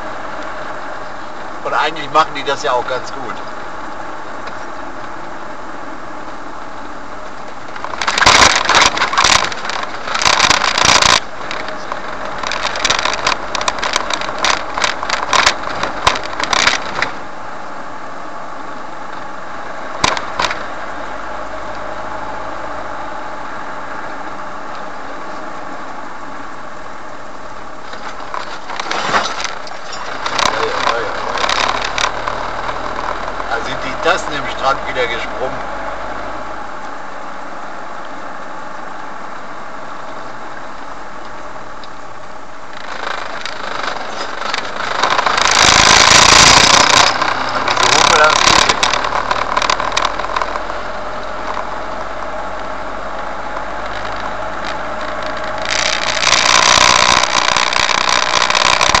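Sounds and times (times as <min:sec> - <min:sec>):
vehicle engine and tyres drone: 0:00.0 - 0:59.0.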